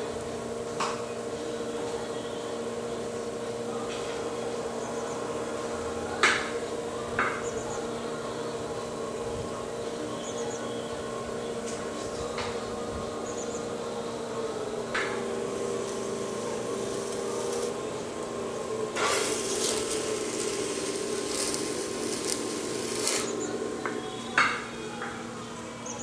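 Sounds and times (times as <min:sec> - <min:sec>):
potter's wheel motor humming: 0:00.0 - 0:26.0.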